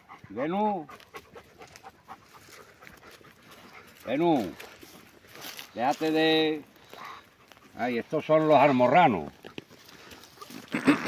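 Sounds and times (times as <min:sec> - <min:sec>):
dog panting: 0:00.0 - 0:10.7.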